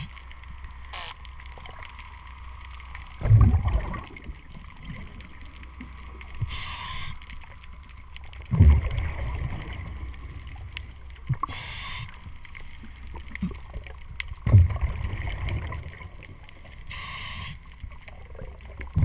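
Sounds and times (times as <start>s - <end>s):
exhaled bubbles rumbling: 0.0s - 16.9s, 17.6s - 19.0s
regulator inhalation hiss: 6.4s - 7.2s, 11.4s - 12.3s, 16.9s - 17.7s.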